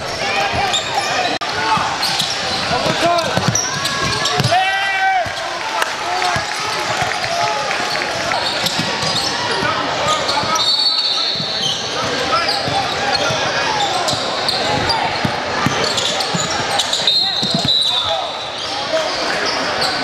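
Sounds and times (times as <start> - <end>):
crowd and player voices: 0.0 - 20.0
basketball bouncing on court: 1.7 - 4.6, 8.2 - 10.6, 14.1 - 17.9
loud shout: 3.9 - 8.4.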